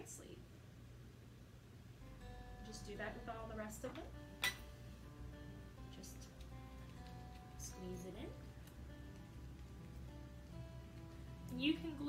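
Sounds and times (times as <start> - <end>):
soft background music: 1.9 - 12.0
metal jar lid clink: 4.4 - 4.7.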